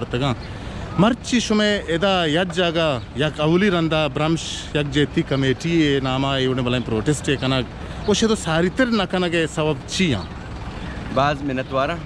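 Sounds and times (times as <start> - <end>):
city background hum: 0.0 - 12.0.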